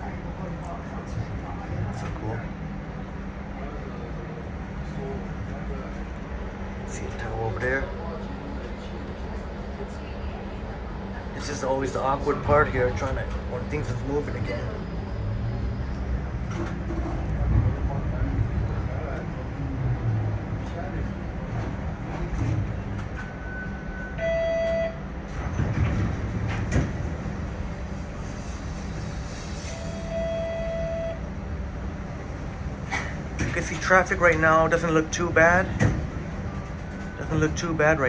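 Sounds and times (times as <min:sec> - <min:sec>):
muffled voices: 0:00.0 - 0:15.2, 0:16.0 - 0:23.4, 0:31.6 - 0:38.0
streetcar interior rumble: 0:00.0 - 0:38.0
electronic tones: 0:29.8 - 0:31.2.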